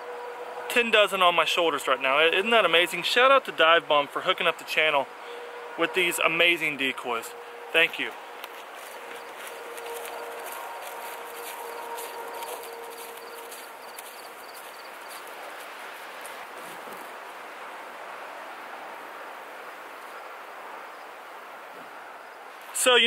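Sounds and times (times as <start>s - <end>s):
steady outdoor hiss: 0.0s - 23.0s
footsteps in grass: 7.9s - 17.4s.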